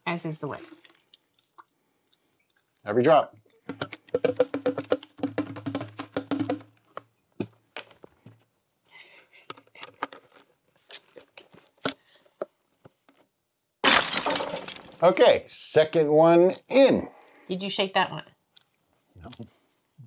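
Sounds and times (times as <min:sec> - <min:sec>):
juice glugging from bottle: 0:00.4 - 0:02.7.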